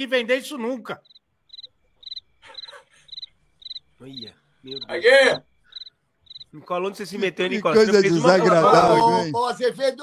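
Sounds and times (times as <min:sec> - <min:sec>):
high-pitched animal chirps: 0:01.0 - 0:03.9, 0:05.7 - 0:06.5.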